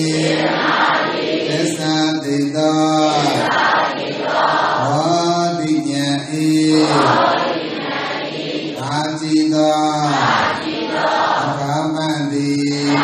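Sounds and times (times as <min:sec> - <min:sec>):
men chanting on low pitch: 0:00.0 - 0:13.0.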